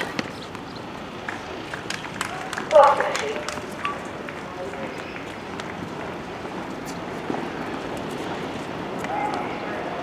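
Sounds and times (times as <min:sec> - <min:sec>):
murmur of distant voices: 0:01.0 - 0:10.0.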